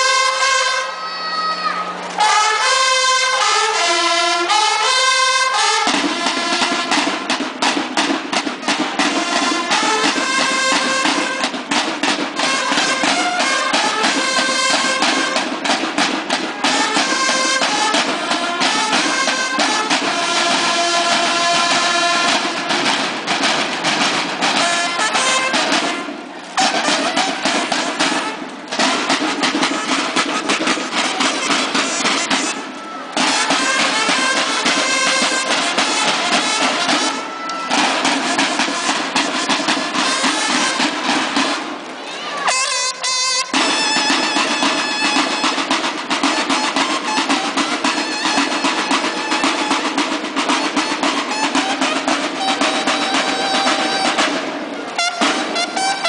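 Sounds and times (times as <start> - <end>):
snare drums: 0.0 - 0.8, 1.9 - 56.0
bugles playing a march: 0.0 - 56.0.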